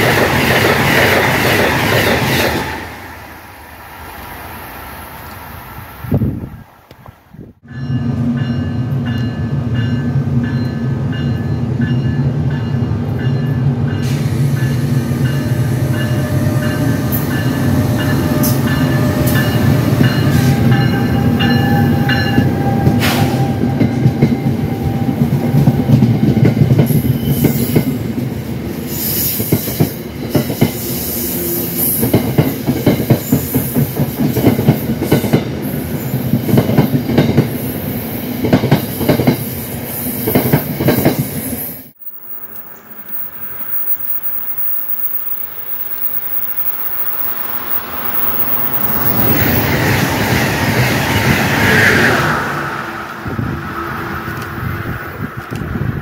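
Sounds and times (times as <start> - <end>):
electric locomotive hum and whine: 0.0 - 56.0
high hiss: 41.4 - 49.8.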